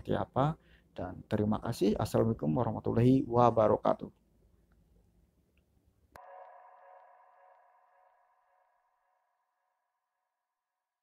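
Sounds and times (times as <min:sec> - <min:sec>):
ringing electronic tone: 0:06.2 - 0:09.2.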